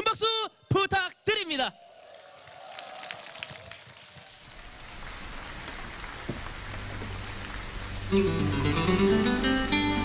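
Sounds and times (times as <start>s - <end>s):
audience applauding: 1.9s - 7.5s.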